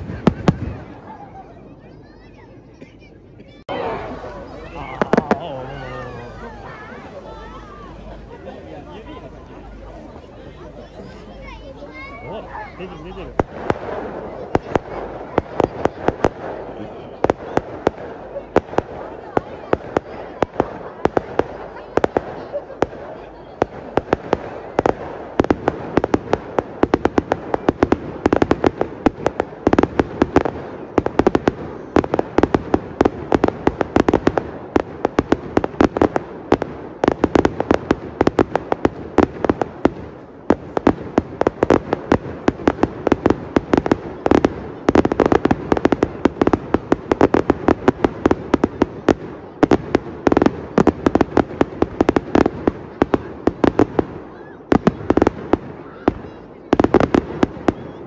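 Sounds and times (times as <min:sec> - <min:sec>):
fireworks bursting and crackling: 0:00.0 - 0:01.5, 0:03.6 - 0:58.0.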